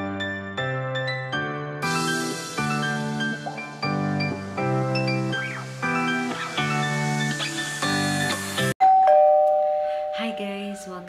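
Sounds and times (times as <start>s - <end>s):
music: 0.0s - 8.8s
two-note ding-dong chime: 8.8s - 11.0s.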